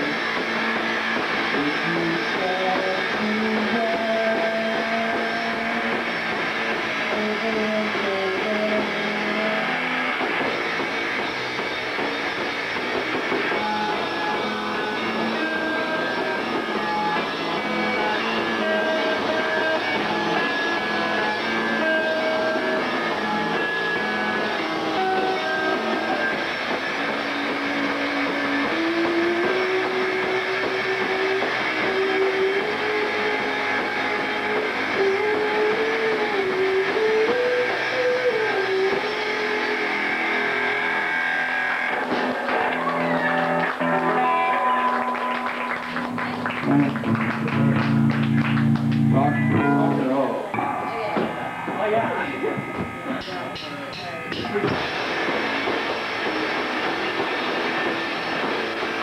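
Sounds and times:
drums and cymbals: 0:00.0 - 0:40.9, 0:51.0 - 0:59.0
distorted electric guitar: 0:00.0 - 0:59.0.

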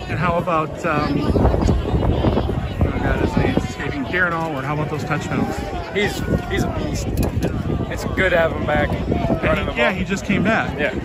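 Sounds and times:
speech and crowd chatter: 0:00.0 - 0:11.0.

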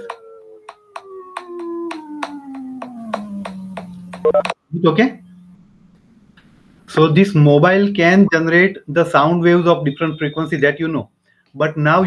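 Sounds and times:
pure tone gliding down: 0:00.0 - 0:07.8.

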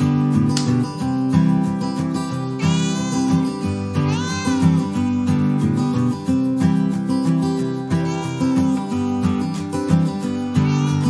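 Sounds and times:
background music: 0:00.0 - 0:11.0
cat meowing: 0:02.6 - 0:05.5, 0:07.9 - 0:09.4, 0:10.5 - 0:11.0.

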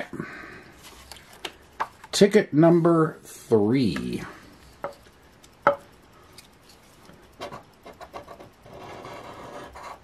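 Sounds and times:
scratching lottery ticket: 0:07.8 - 0:10.0.

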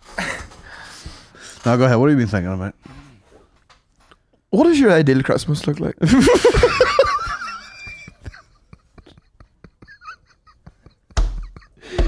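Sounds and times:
man stifled breathy laughter: 0:00.1 - 0:00.7, 0:06.2 - 0:12.0.

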